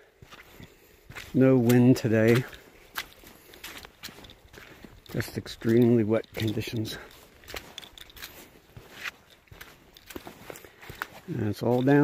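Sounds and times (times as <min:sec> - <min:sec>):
footsteps on muddy trail: 0:00.0 - 0:12.0.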